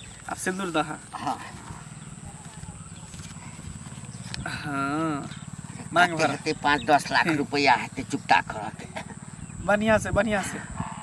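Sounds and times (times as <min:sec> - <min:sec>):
low pulsing hum: 0:00.0 - 0:11.0.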